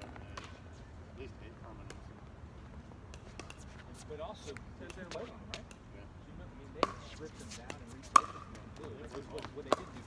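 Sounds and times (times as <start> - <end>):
paddles hitting plastic ball: 7.7 - 10.0.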